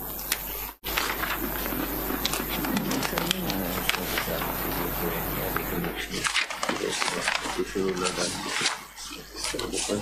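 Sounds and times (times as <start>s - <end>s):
indistinct voices talking: 0.9s - 10.0s.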